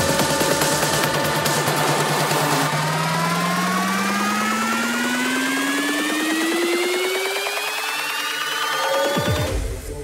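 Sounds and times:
fast pulsing synth texture: 0:00.0 - 0:09.5
synthesizer riser gliding upward: 0:00.0 - 0:10.0.

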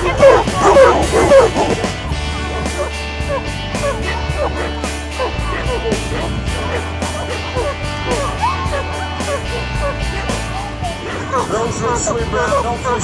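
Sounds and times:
background music: 0:00.0 - 0:13.0
dogs barking and yipping: 0:00.0 - 0:13.0.

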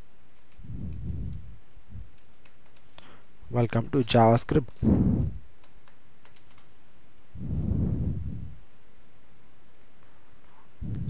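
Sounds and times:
low rumbling sound: 0:04.8 - 0:05.4, 0:07.3 - 0:08.6
keyboard keystroke clicks: 0:05.6 - 0:06.7.

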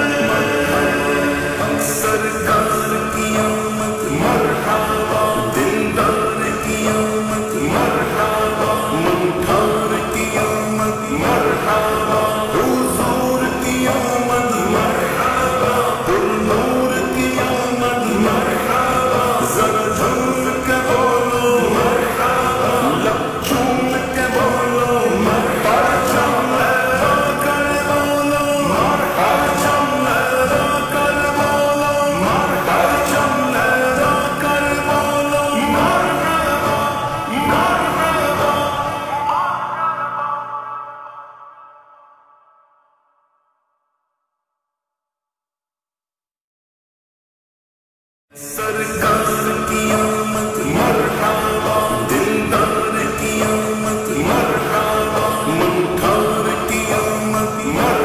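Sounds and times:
man singing devotional song with reverb: 0:00.0 - 0:42.7, 0:48.3 - 0:58.0.

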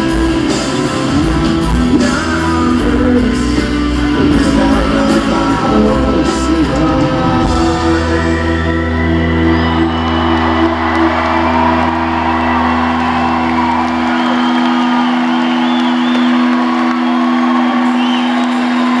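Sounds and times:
crowd cheering and whistling: 0:00.0 - 0:19.0.

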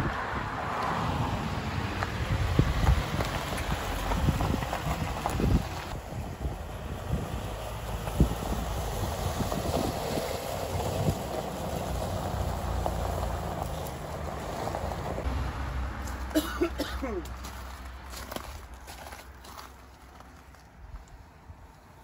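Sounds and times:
tyres crunching over gravel: 0:02.0 - 0:22.0
pickup engine running: 0:02.2 - 0:19.6.

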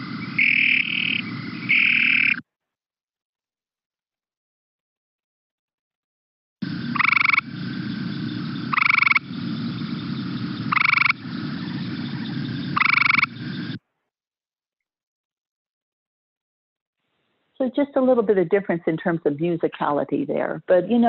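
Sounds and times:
treefrog trilling: 0:00.0 - 0:02.4, 0:06.6 - 0:13.8
low background hum: 0:06.6 - 0:13.8.

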